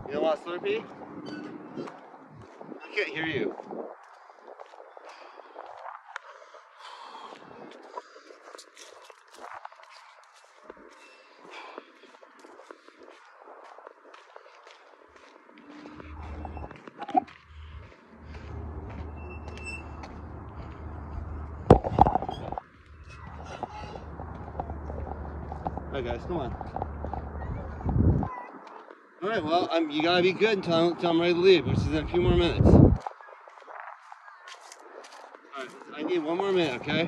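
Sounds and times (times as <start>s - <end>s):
footsteps on concrete and dirt: 0.4s - 29.6s, 32.8s - 37.0s
low rumble: 16.0s - 28.3s.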